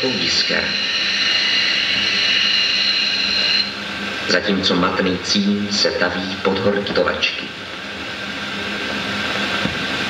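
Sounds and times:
film soundtrack hiss: 0.0 - 10.0.

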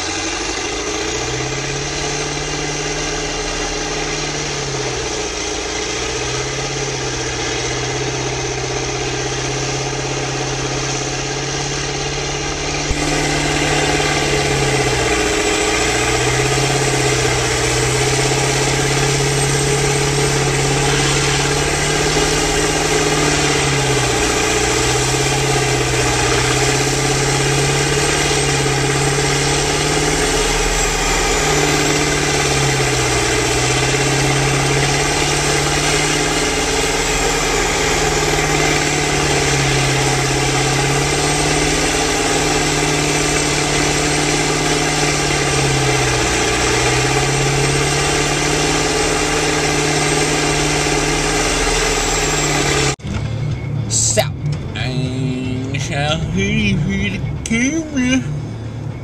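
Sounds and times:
hay bales grinding: 0.0 - 53.0
diesel engine drone: 0.0 - 59.0.

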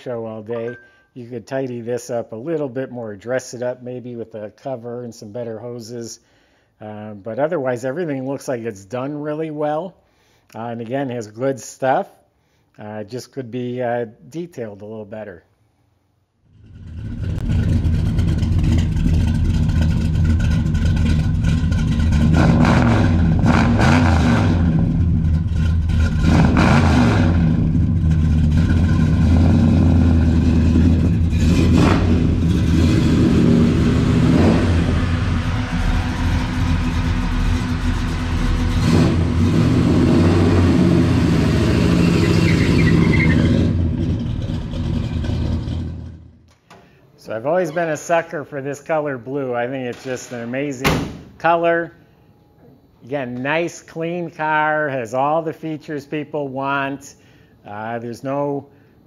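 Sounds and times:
car engine revving: 16.5 - 46.3.

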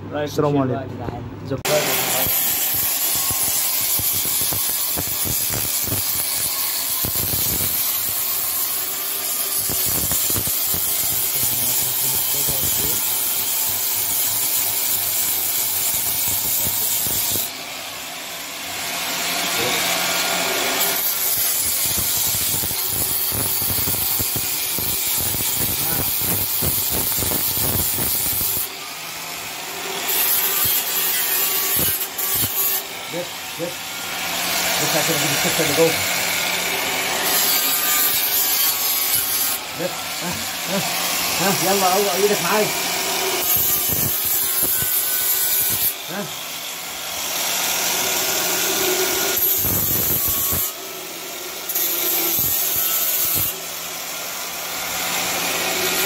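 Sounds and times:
power tool on metal: 1.6 - 56.0.

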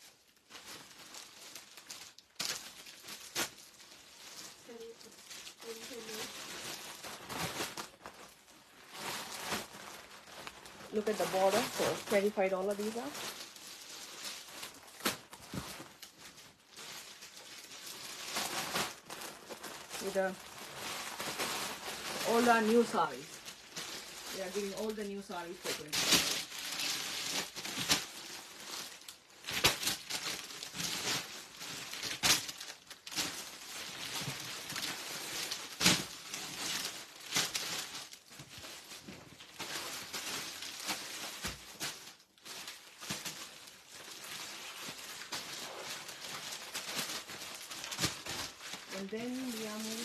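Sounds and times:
fabric and wrapping rustling: 0.0 - 50.0
sharp crackles: 0.5 - 38.2, 39.6 - 50.0.

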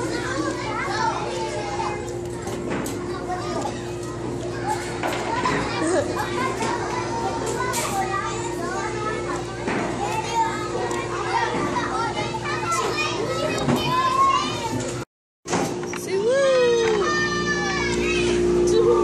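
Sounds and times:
children chattering and calling: 0.0 - 15.0, 16.0 - 19.0.

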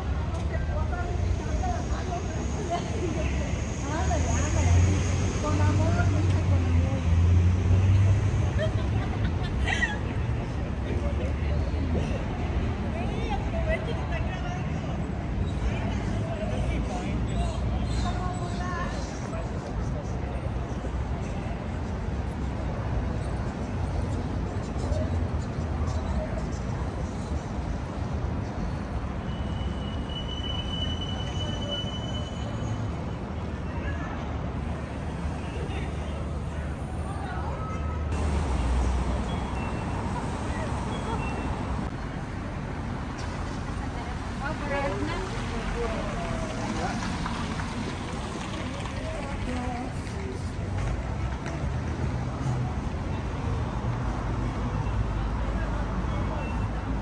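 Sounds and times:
people talking in background: 0.0 - 57.0
traffic rumble: 0.0 - 57.0.

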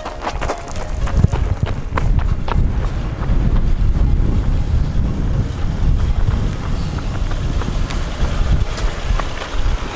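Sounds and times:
car approaching: 0.0 - 9.9
wind buffeting microphone: 0.0 - 9.9.

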